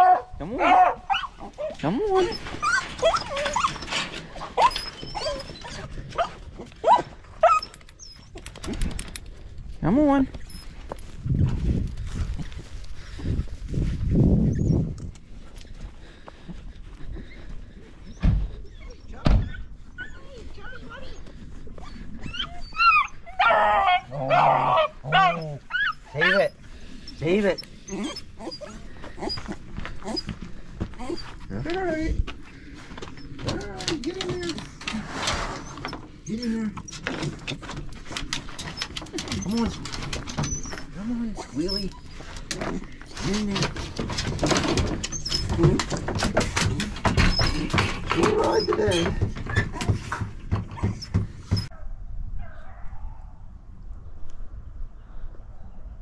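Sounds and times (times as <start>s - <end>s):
dogs whining and yelping: 0.0s - 8.6s, 14.4s - 14.9s, 17.8s - 31.5s, 35.6s - 42.9s, 43.7s - 51.8s
outdoor hush: 0.0s - 9.8s, 14.5s - 51.8s
knocks and rattles from crate: 2.1s - 6.7s, 33.2s - 41.0s, 41.6s - 51.7s.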